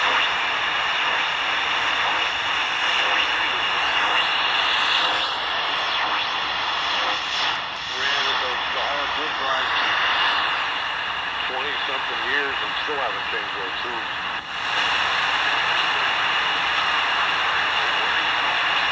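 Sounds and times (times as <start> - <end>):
radio static hiss: 0.0 - 18.9
faint voice over radio: 6.9 - 10.3, 11.4 - 14.1, 15.4 - 18.9.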